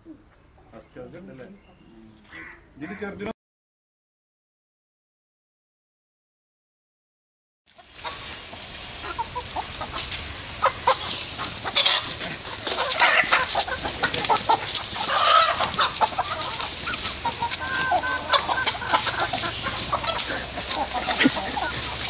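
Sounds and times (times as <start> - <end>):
chickens clucking: 7.7 - 22.0.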